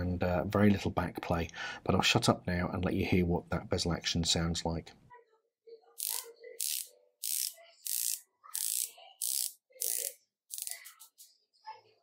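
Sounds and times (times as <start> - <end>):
watch bezel ratcheting clicks: 6.0 - 10.9.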